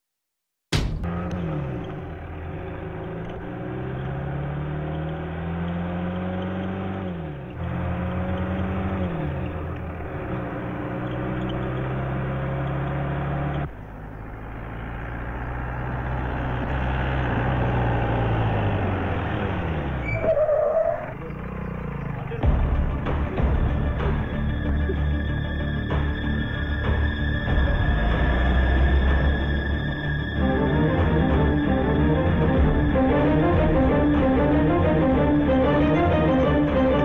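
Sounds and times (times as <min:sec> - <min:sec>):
vehicle engine accelerating: 0:00.8 - 0:37.0.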